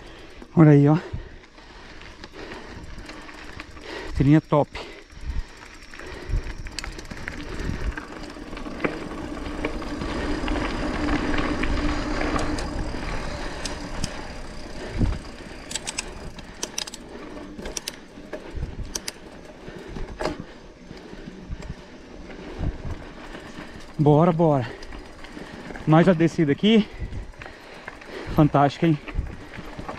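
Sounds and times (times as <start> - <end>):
bike clicks and rattles: 0.0 - 29.9
bike tyres rolling on gravel: 0.0 - 29.9.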